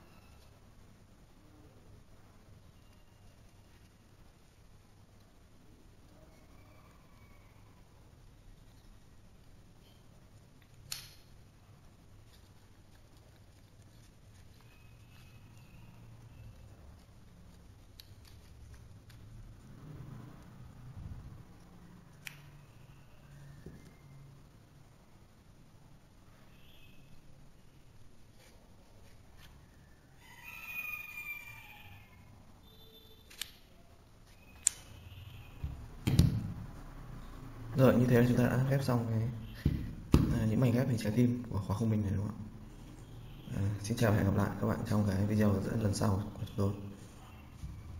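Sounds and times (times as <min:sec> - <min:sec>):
sharp wooden clicks: 0:10.6 - 0:11.3
low steady hum: 0:32.0 - 0:47.9.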